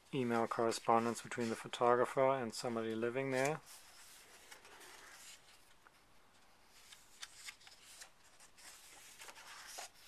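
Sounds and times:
paper pages rustling and turning: 2.9s - 10.0s.

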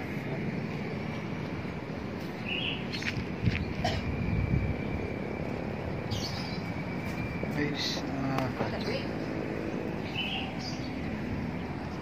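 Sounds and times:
bird chirps: 2.3s - 5.0s, 6.0s - 8.0s, 9.9s - 11.7s.

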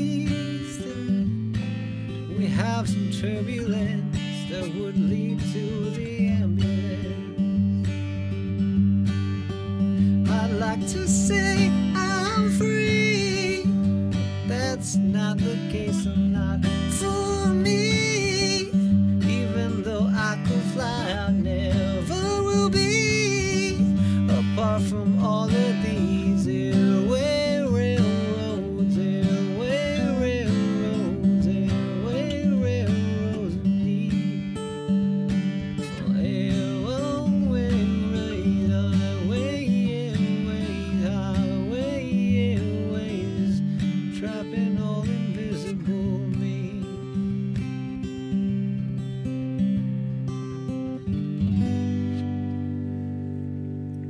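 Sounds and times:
man singing: 0.0s - 8.0s, 9.8s - 34.6s, 35.7s - 47.9s
acoustic guitar strumming: 0.0s - 54.0s.

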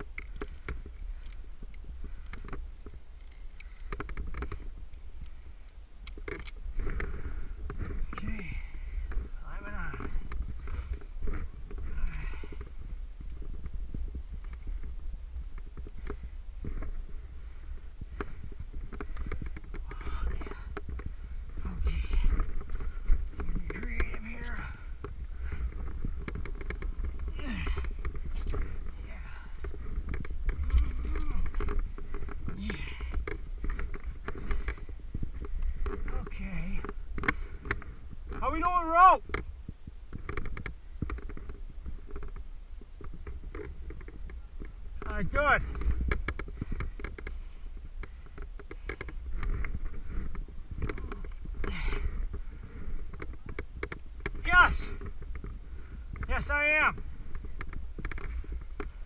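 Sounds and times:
low microphone rumble: 0.0s - 38.6s
climbing gear scraping rock: 0.0s - 59.0s
person breathing: 6.8s - 9.4s, 10.0s - 13.0s, 16.0s - 23.4s, 24.5s - 26.4s, 27.0s - 36.1s, 36.8s - 38.1s, 45.7s - 53.3s.

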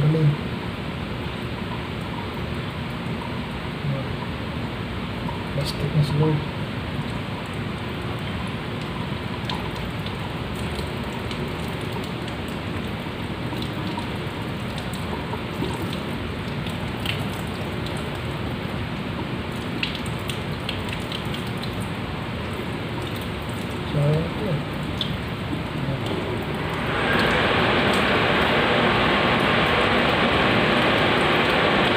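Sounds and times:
water dripping: 1.2s - 4.4s, 5.1s - 5.5s, 6.9s - 31.9s
water hissing: 26.5s - 31.9s.

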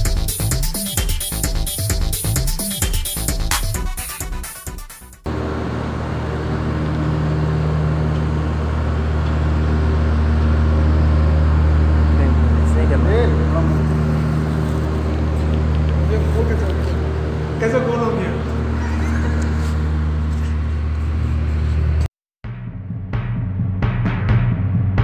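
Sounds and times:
electronic music: 0.0s - 5.3s
low machine hum: 5.3s - 22.1s.

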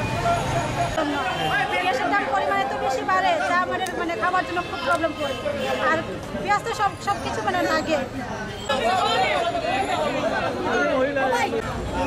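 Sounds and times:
voices chattering: 0.0s - 12.0s
woman talking: 6.4s - 8.1s.

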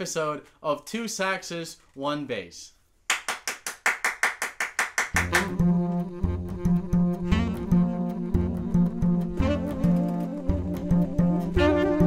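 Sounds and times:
tenor saxophones playing jazz: 5.2s - 12.0s
upright double bass: 5.2s - 12.0s.

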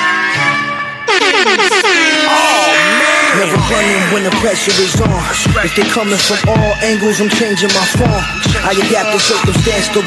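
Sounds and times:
air horn blasts: 1.0s - 3.3s.

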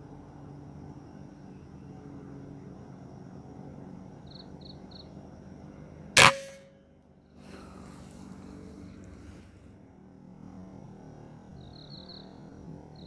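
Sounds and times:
air rifle shot: 6.2s - 6.7s.

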